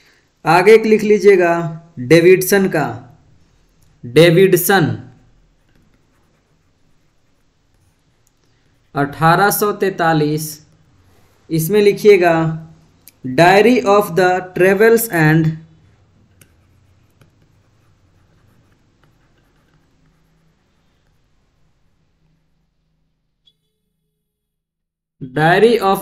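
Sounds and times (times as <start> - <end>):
stylus scratching on tablet: 2.4 - 12.2, 13.5 - 22.8.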